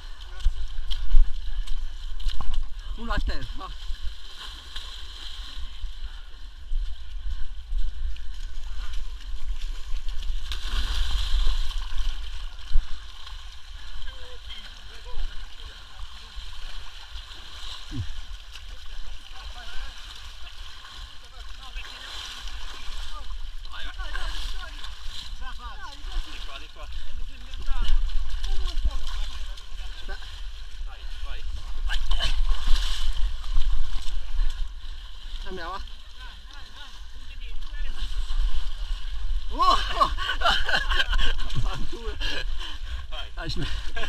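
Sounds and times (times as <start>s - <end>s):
muddy water sloshing: 0.0s - 44.0s.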